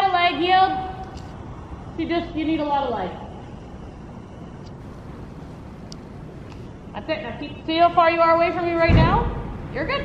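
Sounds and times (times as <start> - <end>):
wind against metal walls: 0.0 - 10.0.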